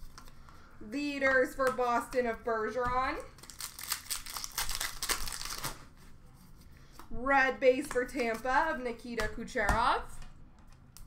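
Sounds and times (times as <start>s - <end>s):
foil pack crinkling: 3.3s - 5.9s.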